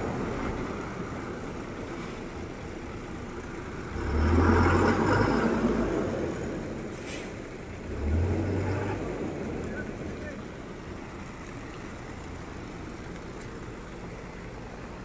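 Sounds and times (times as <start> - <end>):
truck engine running: 0.0 - 15.0.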